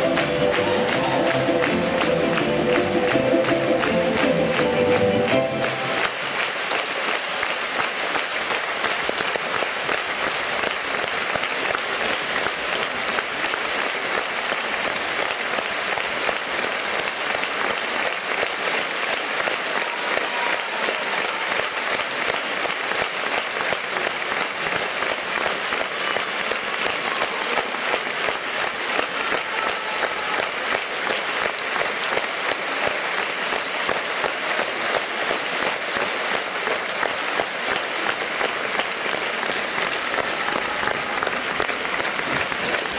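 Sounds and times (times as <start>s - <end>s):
audience applauding: 0.0s - 42.9s.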